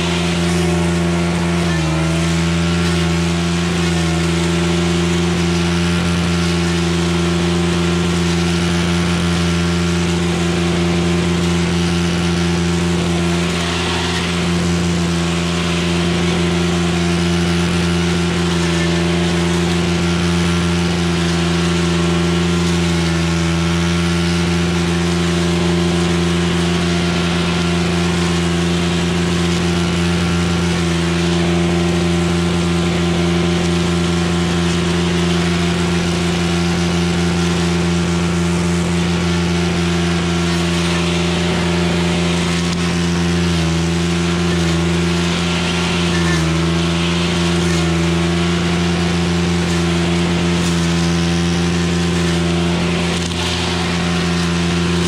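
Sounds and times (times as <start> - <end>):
brushcutter engine running: 0.0 - 55.0.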